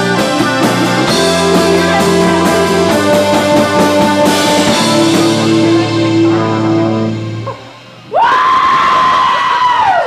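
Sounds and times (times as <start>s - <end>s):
crowd cheering: 8.1s - 10.0s
person whooping: 8.1s - 10.0s.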